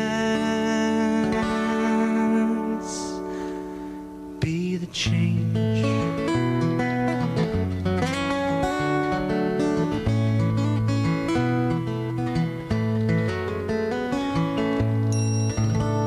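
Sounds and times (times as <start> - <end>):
acoustic guitar strumming: 0.0 - 16.0
bass line: 5.1 - 16.0.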